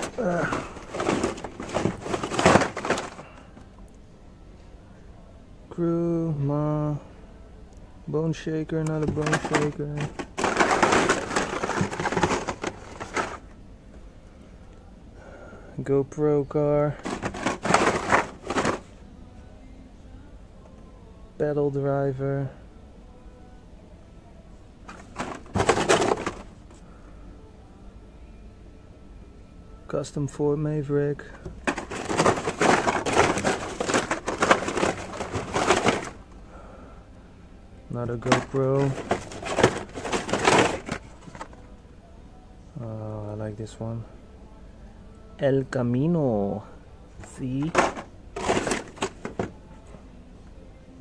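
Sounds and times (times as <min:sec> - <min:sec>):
blister packs rustling and scraping: 0:00.0 - 0:03.5, 0:09.0 - 0:13.5, 0:17.0 - 0:18.9, 0:24.9 - 0:26.6, 0:31.4 - 0:36.2, 0:38.1 - 0:41.6, 0:47.2 - 0:49.6.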